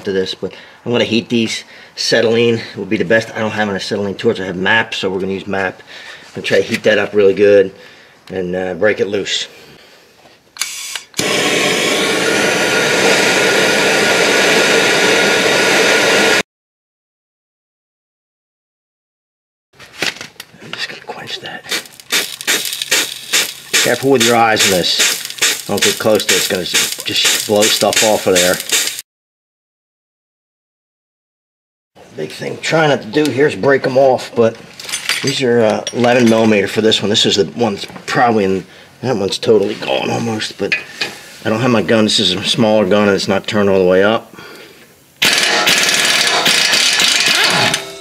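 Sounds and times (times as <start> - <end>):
pneumatic impact wrench hammering: 10.6 - 12.6, 21.7 - 29.0, 45.2 - 48.0
spray bottle squirting: 21.7 - 29.0
water hissing on hot metal: 21.7 - 29.0.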